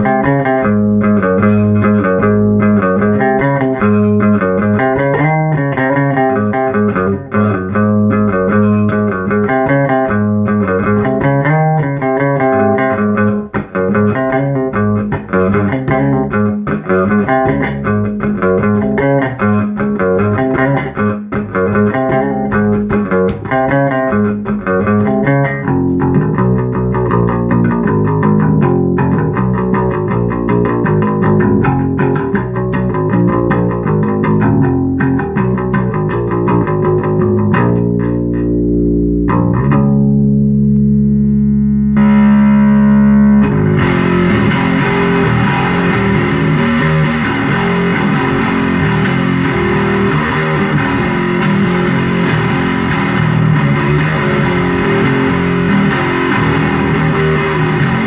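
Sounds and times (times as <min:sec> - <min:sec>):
distorted guitar: 0:00.0 - 0:58.0
electric bass: 0:00.0 - 0:58.0
drums: 0:13.6 - 0:37.7, 0:43.8 - 0:58.0.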